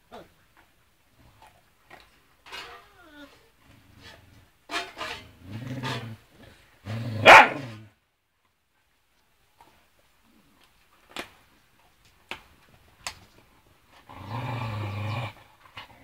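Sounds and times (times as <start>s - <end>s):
dog whining: 2.6s - 3.5s
dog barking sharply: 7.2s - 7.8s
dog growling low: 14.0s - 16.0s.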